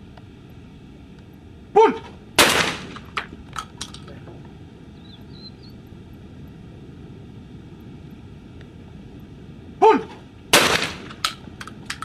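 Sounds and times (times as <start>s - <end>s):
shotgun shot: 2.4s - 3.1s, 10.5s - 11.2s.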